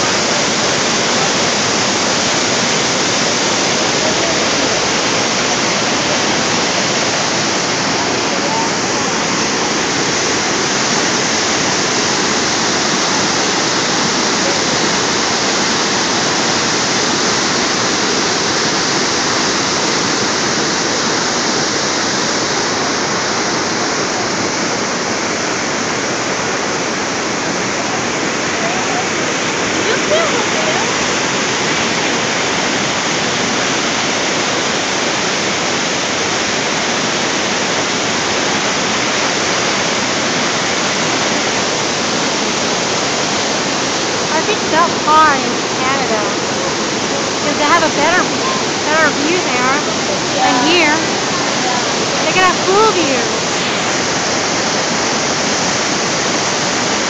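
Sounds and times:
waterfall rushing: 0.0s - 57.0s.

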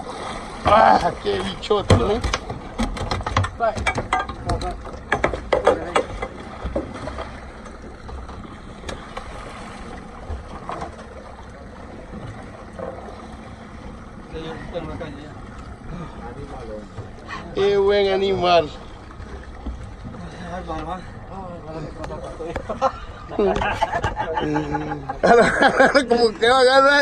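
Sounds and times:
sea noise: 0.0s - 27.0s.

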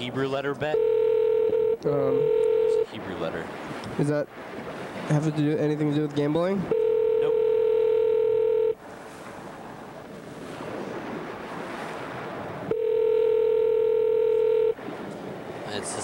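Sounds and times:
telephone ringback tone: 0.7s - 2.9s, 6.7s - 8.8s, 12.7s - 14.8s
phone line hiss: 0.8s - 2.9s, 6.7s - 8.8s, 12.7s - 14.8s.

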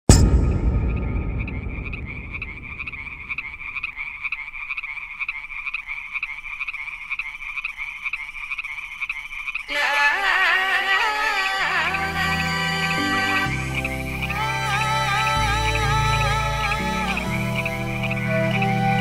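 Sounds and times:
deep boom: 0.0s - 4.2s.

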